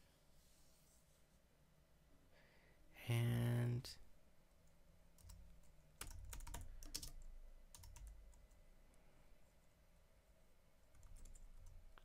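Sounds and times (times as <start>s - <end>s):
computer keyboard typing: 5.2s - 8.6s, 10.9s - 11.8s.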